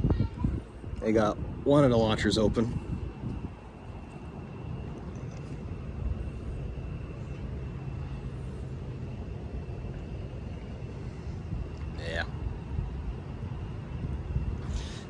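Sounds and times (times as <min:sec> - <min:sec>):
faint high-pitched whine: 0:00.0 - 0:15.0
low rumble of open-air ambience: 0:00.0 - 0:15.0.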